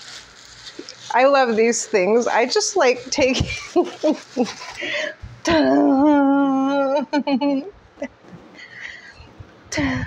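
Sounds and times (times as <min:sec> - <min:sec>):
woman laughing: 0:03.1 - 0:08.2.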